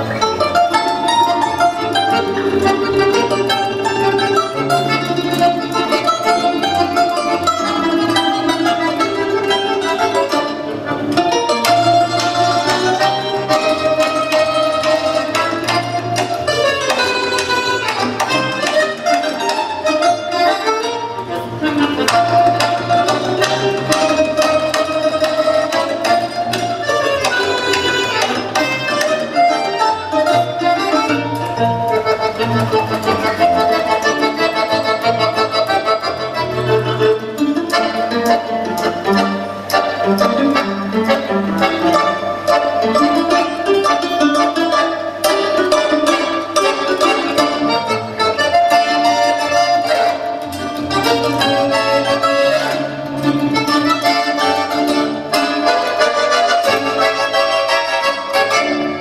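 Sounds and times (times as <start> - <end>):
accordion chords: 0.0 - 59.0
plucked string melody: 0.0 - 59.0.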